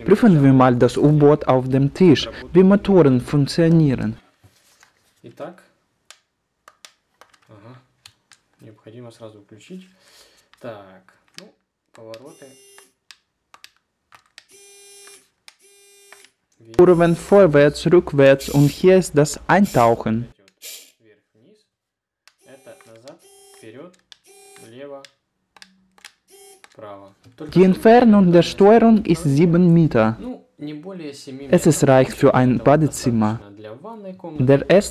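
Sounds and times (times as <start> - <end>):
tiny electric motors whirring: 14.4 - 17.1, 18.4 - 18.8, 22.3 - 24.8, 26.2 - 26.8.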